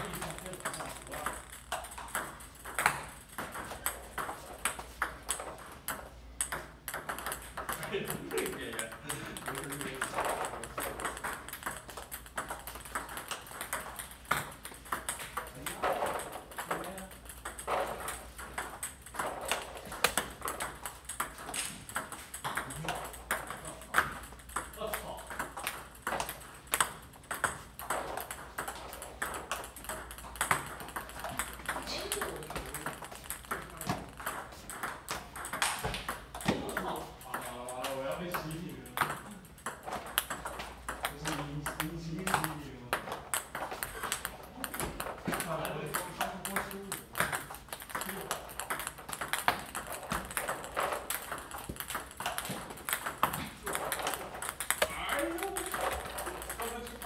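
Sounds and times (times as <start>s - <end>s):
table tennis balls clicking: 0.0s - 57.0s.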